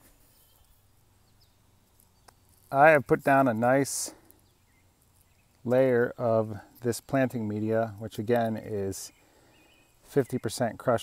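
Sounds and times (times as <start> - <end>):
faint high bird chirps: 0.0 - 3.1, 4.3 - 6.2.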